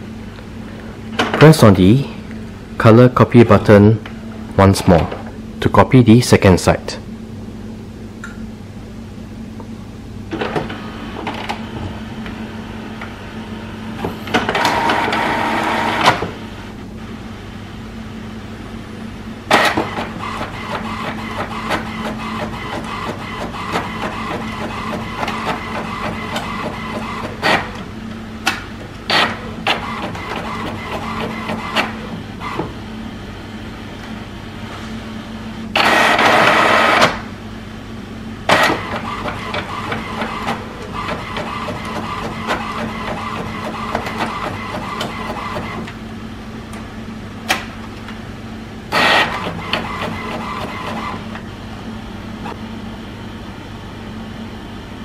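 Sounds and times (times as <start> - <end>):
printer mechanical whirr: 10.3 - 37.4, 38.1 - 55.0
printer feeder rush: 13.9 - 16.6, 19.5 - 27.9, 29.0 - 32.8, 35.7 - 37.3, 38.4 - 46.0, 48.9 - 51.4.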